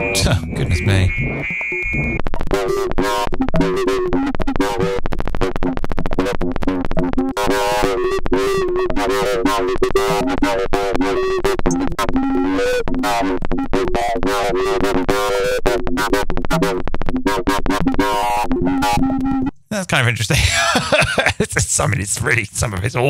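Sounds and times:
warbling pitched tones: 0:00.0 - 0:02.2
dense rapid glitch clicks: 0:00.0 - 0:12.2.

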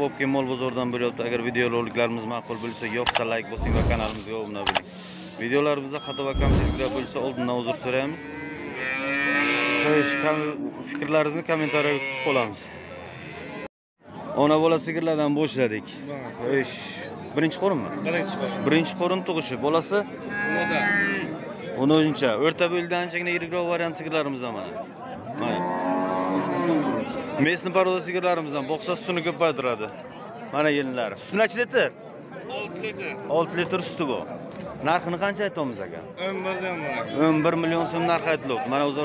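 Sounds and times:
cow mooing: 0:08.1 - 0:10.6, 0:11.6 - 0:13.7, 0:20.3 - 0:21.3, 0:25.4 - 0:27.1.

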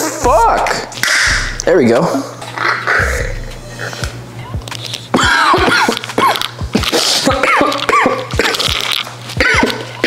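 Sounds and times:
low hum: 0:00.0 - 0:05.3
man coughing and sneezing: 0:05.2 - 0:08.7, 0:09.4 - 0:09.9.

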